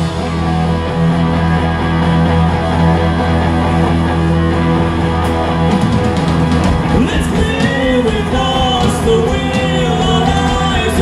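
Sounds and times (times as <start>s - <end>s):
bass guitar: 0.0s - 11.0s
distorted electric guitar: 0.0s - 11.0s
drumming: 5.2s - 11.0s.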